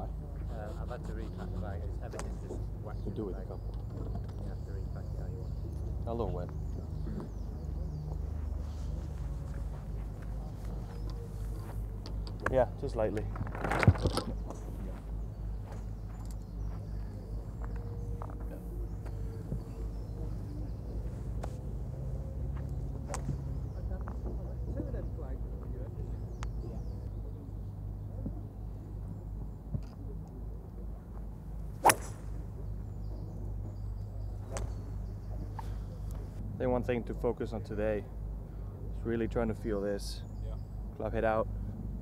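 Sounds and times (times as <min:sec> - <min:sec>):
low background noise: 0:00.0 - 0:42.0
golf club striking ball: 0:31.8 - 0:32.6.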